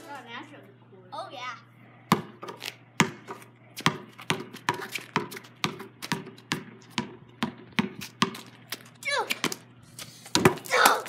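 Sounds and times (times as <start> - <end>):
basketball bouncing on concrete: 2.1 - 11.0.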